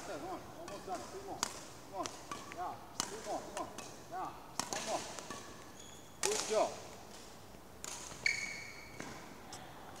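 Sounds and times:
shoe squeak on court floor: 5.7s - 6.2s, 8.2s - 9.2s.

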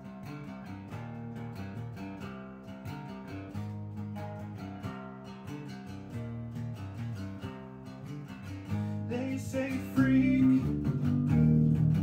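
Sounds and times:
acoustic guitar picking and strumming: 0.0s - 12.0s
bass guitar held notes: 8.8s - 12.0s.

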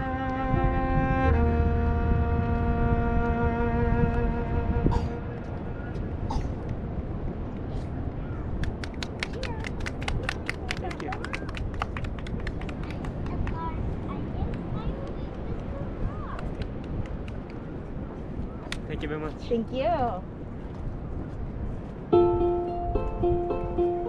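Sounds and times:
wind rumble on microphone: 0.0s - 24.0s
people talking nearby: 9.1s - 11.7s, 12.5s - 16.8s.

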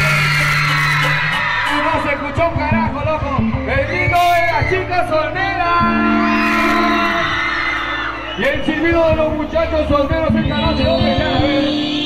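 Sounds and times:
live band holding chord: 4.9s - 12.0s
low bass note: 9.2s - 12.0s.

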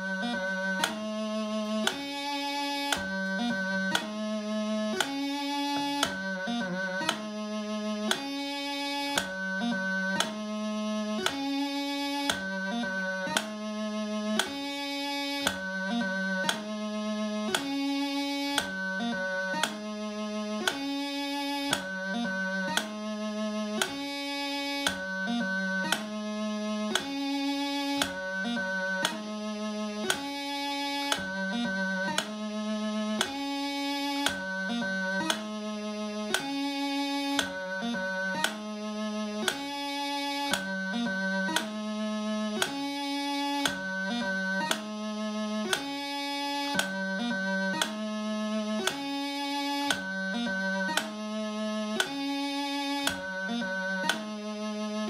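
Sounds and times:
bagpipe practice chanter: 0.0s - 55.0s.

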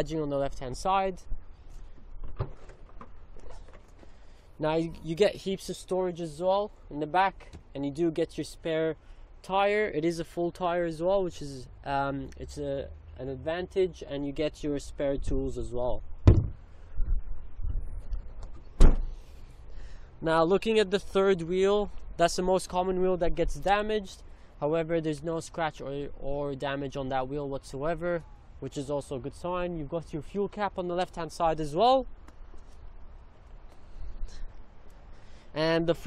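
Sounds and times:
car tailgate shutting: 18.7s - 19.2s.

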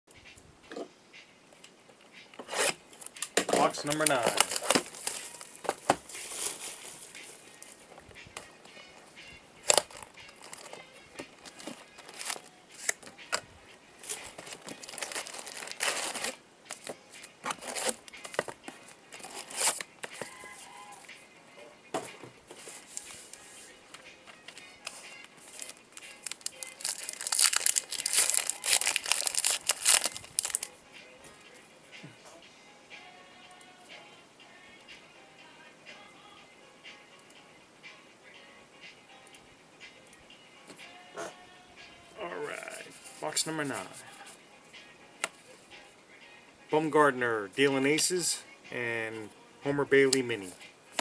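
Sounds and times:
packaging crinkling and tearing: 3.8s - 5.6s, 9.7s - 10.8s, 11.4s - 13.0s, 14.0s - 16.9s, 17.5s - 18.5s, 19.2s - 20.2s, 25.4s - 30.7s.

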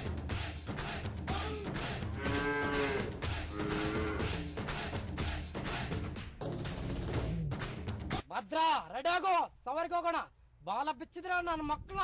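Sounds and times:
cow mooing: 2.1s - 4.4s.

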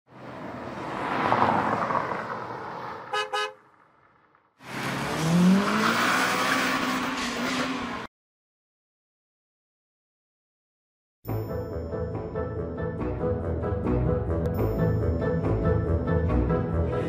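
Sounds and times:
short horn toots: 3.1s - 3.6s
car engine revving: 4.6s - 8.0s.

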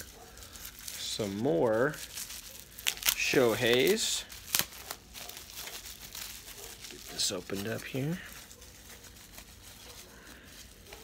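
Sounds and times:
bubble wrap rustling: 0.0s - 11.0s.

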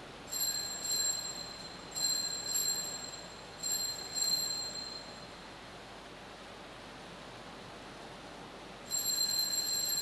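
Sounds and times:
altar bell ringing: 0.3s - 5.4s, 8.9s - 10.0s.

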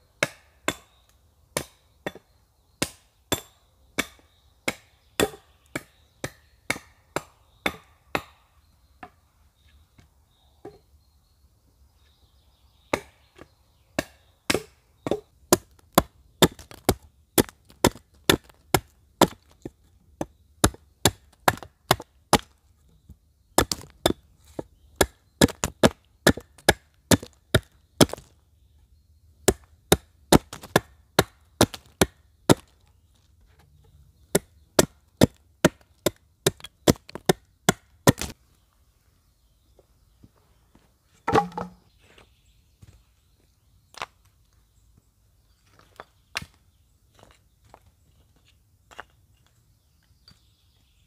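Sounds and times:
hatchet chopping wood: 0.2s - 1.0s, 1.6s - 2.2s, 2.8s - 8.4s, 12.9s - 13.2s, 14.0s - 22.6s, 23.6s - 28.3s, 29.4s - 32.8s, 34.3s - 38.4s, 41.3s - 41.8s.

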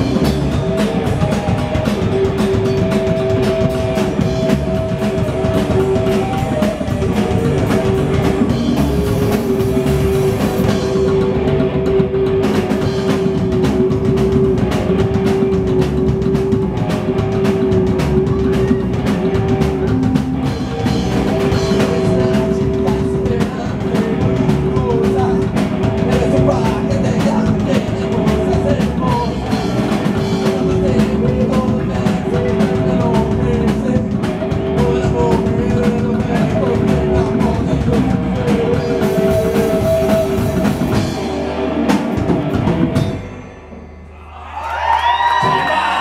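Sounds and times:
fast drum beat: 0.0s - 43.2s
slapped upright bass: 0.0s - 43.3s
electric guitar: 0.0s - 43.8s.

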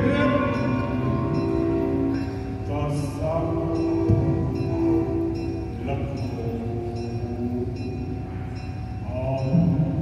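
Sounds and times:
ensemble sustained notes: 0.0s - 10.0s
low drone: 0.0s - 10.0s.

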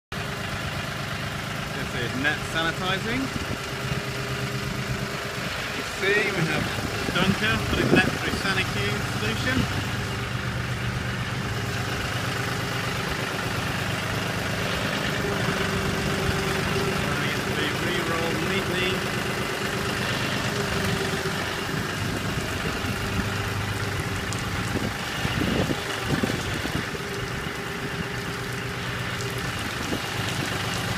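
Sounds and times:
tractor engine idling: 0.1s - 30.9s.

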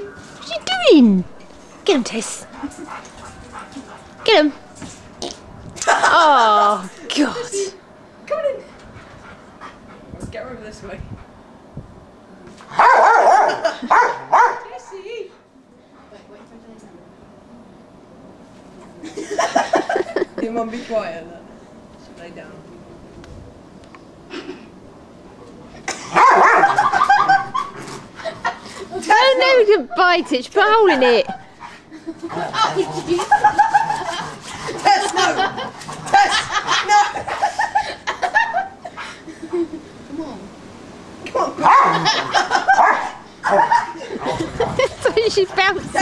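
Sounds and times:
person laughing: 5.8s - 6.6s, 26.5s - 28.9s, 41.8s - 42.8s, 43.4s - 45.3s
dog barking: 12.8s - 14.7s, 26.1s - 27.0s, 41.6s - 42.0s, 42.8s - 44.0s
dog yelping: 12.8s - 14.7s, 26.2s - 27.8s, 41.6s - 44.0s.

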